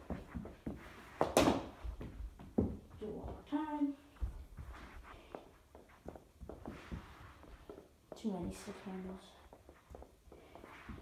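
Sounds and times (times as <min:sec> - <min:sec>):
hockey stick tapping ball on carpet: 0:00.0 - 0:03.4
bare footsteps: 0:00.0 - 0:11.0.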